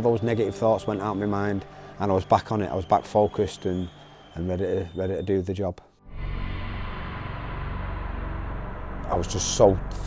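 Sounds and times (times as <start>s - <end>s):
low rumbling drone: 6.0s - 10.0s.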